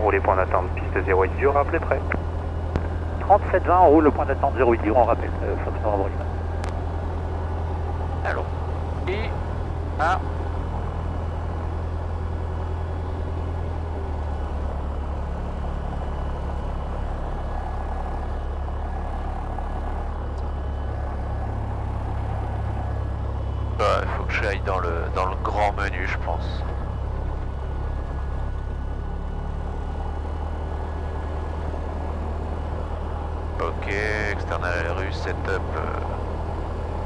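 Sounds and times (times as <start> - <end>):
light aircraft engine drone: 0.0 - 37.0.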